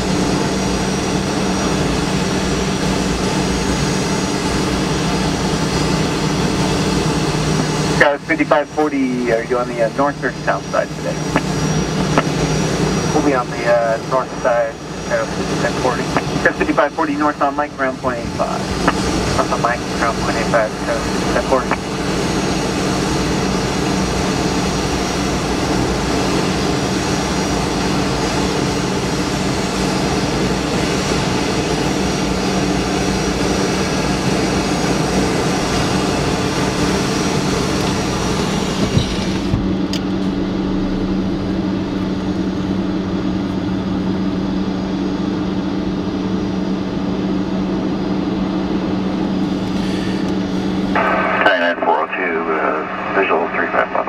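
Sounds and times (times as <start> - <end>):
engine drone: 0.0 - 54.0
voice over radio: 7.9 - 11.5, 13.0 - 22.0, 50.9 - 54.0.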